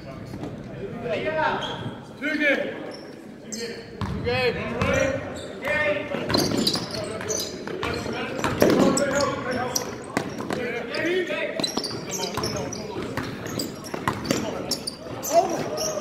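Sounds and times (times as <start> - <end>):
sneakers squeaking: 1.5 - 2.1, 2.8 - 16.0
basketball bouncing: 4.0 - 5.0.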